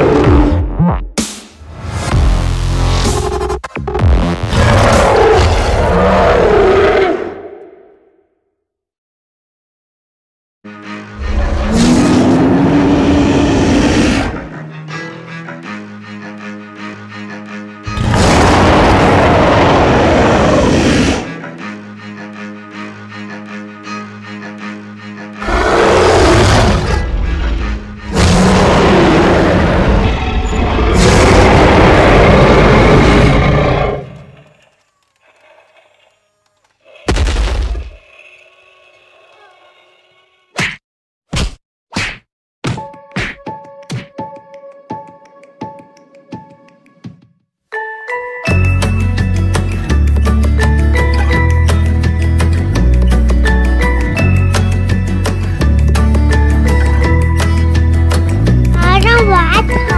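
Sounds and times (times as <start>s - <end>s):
dinosaur roars: 4.5s - 7.9s, 11.2s - 14.7s, 17.9s - 21.4s, 25.4s - 36.2s, 36.8s - 40.5s
background music: 10.7s - 30.0s, 42.7s - 59.9s.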